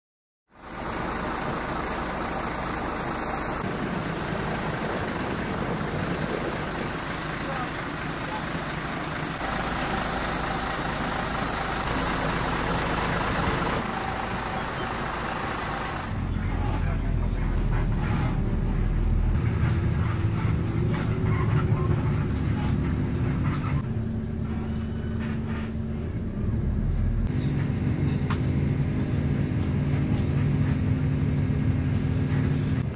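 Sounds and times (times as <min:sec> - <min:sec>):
heavy low engine rumble: 0:00.5 - 0:32.9
traffic noise: 0:00.5 - 0:32.9.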